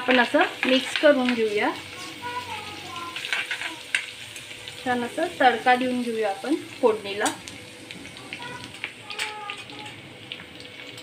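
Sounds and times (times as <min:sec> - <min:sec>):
garlic sizzling in hot oil: 0:00.0 - 0:11.0.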